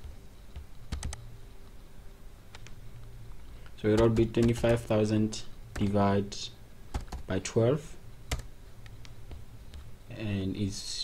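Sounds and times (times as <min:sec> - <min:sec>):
low room hum: 0:00.0 - 0:11.0
computer keyboard keystroke: 0:00.9 - 0:01.2, 0:03.9 - 0:04.8, 0:05.7 - 0:05.9, 0:06.9 - 0:07.3.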